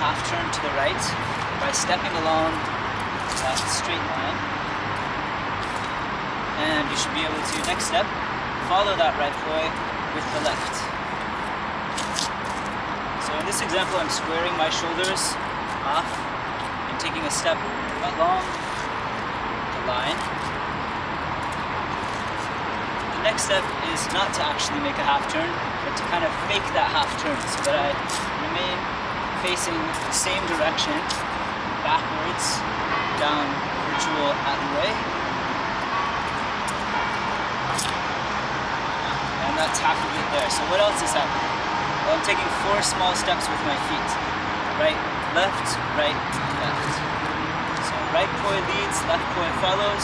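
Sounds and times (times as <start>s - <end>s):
low traffic rumble: 0.0s - 50.0s.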